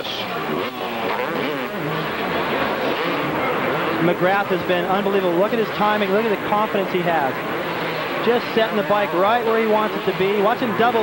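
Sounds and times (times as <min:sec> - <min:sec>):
motorcycle engines revving: 0:00.0 - 0:11.0
track noise: 0:00.0 - 0:11.0.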